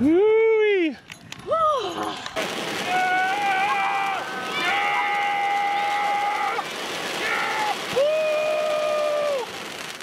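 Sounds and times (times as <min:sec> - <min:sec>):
fountain fireworks hissing: 0:02.4 - 0:10.0
cheer whoop: 0:02.8 - 0:09.5.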